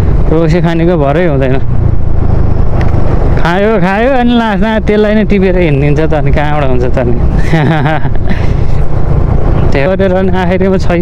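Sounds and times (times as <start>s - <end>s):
motor scooter engine rumble: 0.0s - 11.0s
road noise: 0.0s - 11.0s.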